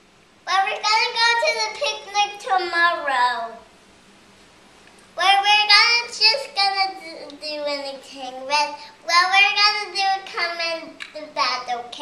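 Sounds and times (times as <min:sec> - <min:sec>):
girl singing: 0:00.5 - 0:03.6, 0:05.2 - 0:12.0.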